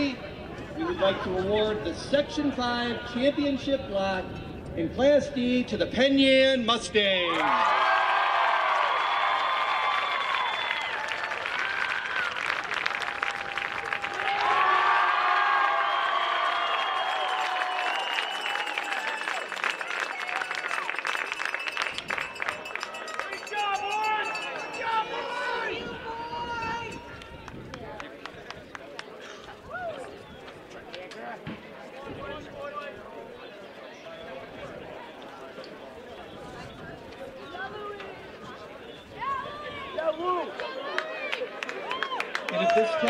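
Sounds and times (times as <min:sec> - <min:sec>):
boys cheering and yelling: 0:07.3 - 0:11.0, 0:13.4 - 0:18.0, 0:23.5 - 0:27.1
clapping: 0:08.6 - 0:14.6, 0:16.1 - 0:23.6, 0:27.2 - 0:29.1, 0:40.5 - 0:43.0.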